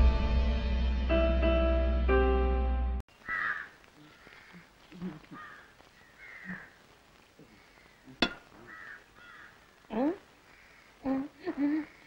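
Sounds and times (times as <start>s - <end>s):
distant crow caws: 3.2s - 11.0s.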